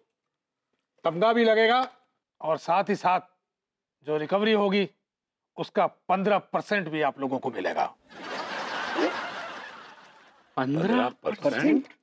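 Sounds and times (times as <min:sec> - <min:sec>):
audience laughter: 0:08.1 - 0:10.6.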